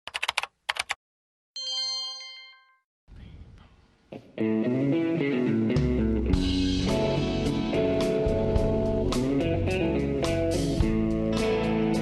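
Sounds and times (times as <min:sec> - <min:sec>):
sharp typing keystroke clicks: 0:00.1 - 0:01.0
bell-like ding: 0:01.6 - 0:02.8.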